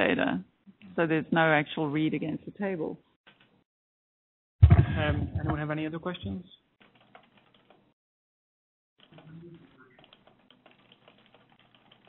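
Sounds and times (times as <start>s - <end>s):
typing on computer keyboard: 6.8s - 7.8s, 9.0s - 9.4s, 10.0s - 12.0s.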